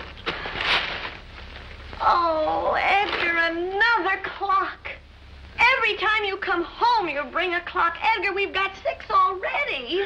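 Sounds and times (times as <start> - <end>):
tissue paper rustling and crinkling: 0.0 - 1.8, 2.8 - 3.4.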